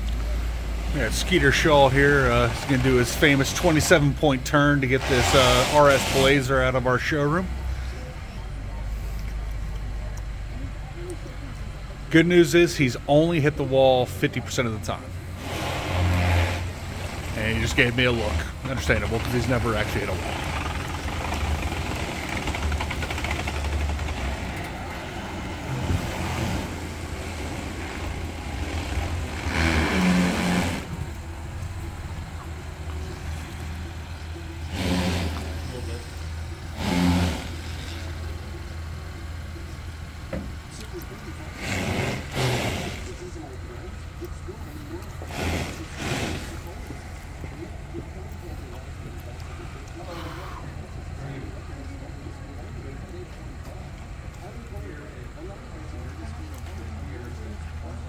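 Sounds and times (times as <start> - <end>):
car engine idling: 0.0 - 58.0
engine bursts: 0.0 - 58.0.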